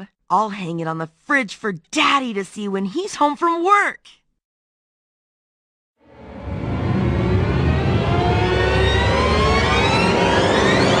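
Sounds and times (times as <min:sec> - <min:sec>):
engine revving: 0:06.2 - 0:11.0
heavy low rumble: 0:06.2 - 0:11.0.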